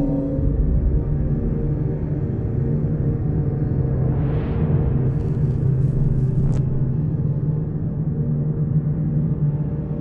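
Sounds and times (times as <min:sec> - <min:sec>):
deep rumbling cinematic drone: 0:00.0 - 0:10.0.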